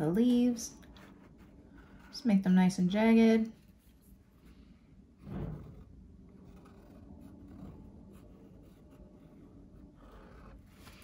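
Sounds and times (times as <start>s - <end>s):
pen scratching on paper: 0.2s - 2.6s, 5.2s - 11.0s.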